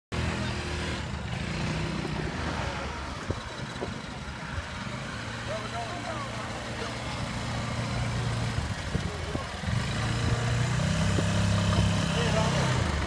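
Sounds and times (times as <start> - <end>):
car engine running low: 0.2 - 13.0
quad bike engines idling: 0.2 - 13.0.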